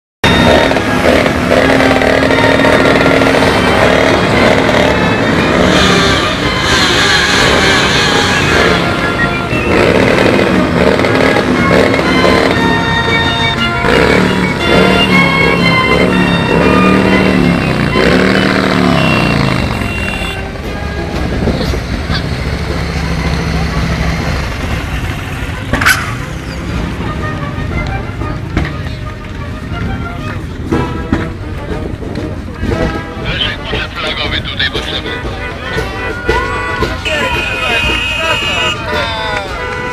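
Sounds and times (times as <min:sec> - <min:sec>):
motorcycle engines revving: 0:00.2 - 0:39.9.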